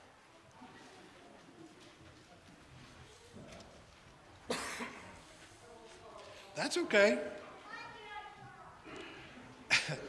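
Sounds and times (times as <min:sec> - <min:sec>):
person coughing: 0:04.5 - 0:05.0.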